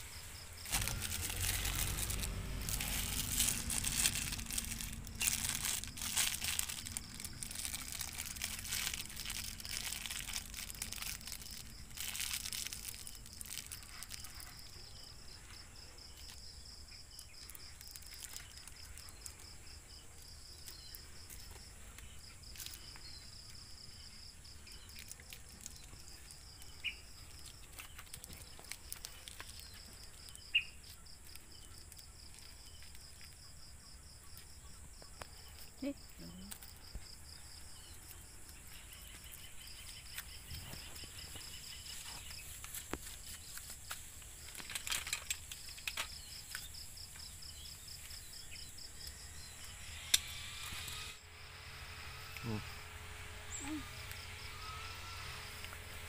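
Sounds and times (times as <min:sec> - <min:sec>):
insect trilling: 0:00.0 - 0:56.0
plastic bag crinkling: 0:00.6 - 0:14.8, 0:17.4 - 0:19.6, 0:20.2 - 0:23.6, 0:24.7 - 0:30.5, 0:38.7 - 0:46.7.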